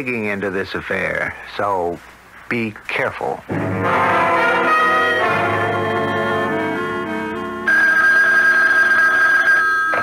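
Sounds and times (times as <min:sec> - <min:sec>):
telephone bell ringing: 0:04.3 - 0:10.0.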